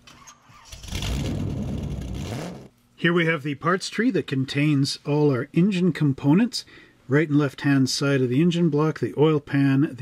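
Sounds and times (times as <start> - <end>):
car engine starting and revving: 0.5 - 2.7.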